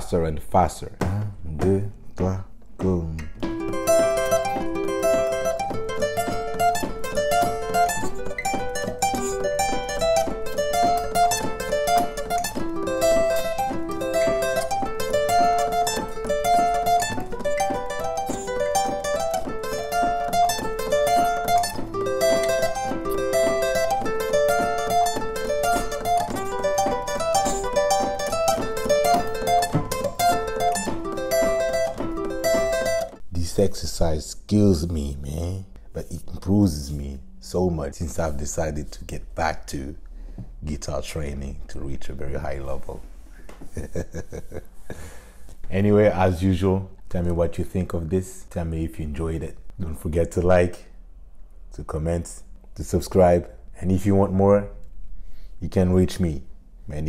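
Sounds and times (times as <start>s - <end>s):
acoustic guitar fast picking: 2.8s - 33.2s.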